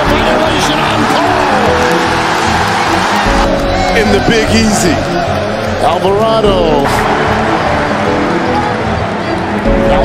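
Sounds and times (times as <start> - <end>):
arena crowd noise: 0.0 - 10.0
background music with held notes: 0.0 - 10.0.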